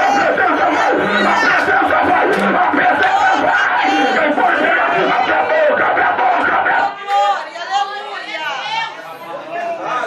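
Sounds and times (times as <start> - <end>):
man preaching into a microphone: 0.0 - 7.3.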